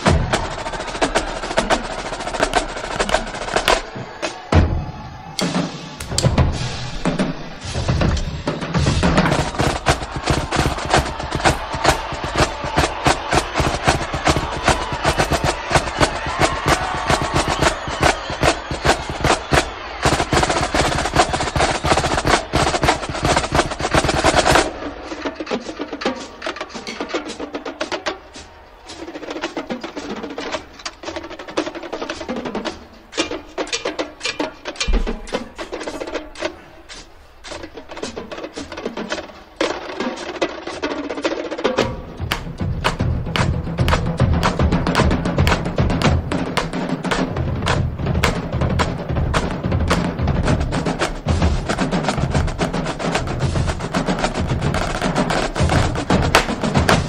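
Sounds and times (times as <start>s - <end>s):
snare drumline playing: 0.0s - 57.0s
sticks striking rubber practice pad: 42.3s - 46.7s.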